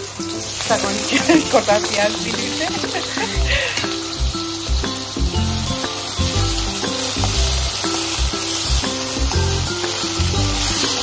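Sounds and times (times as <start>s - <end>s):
onions sizzling in oil: 0.0s - 11.0s
background music with bass beat: 2.6s - 11.0s.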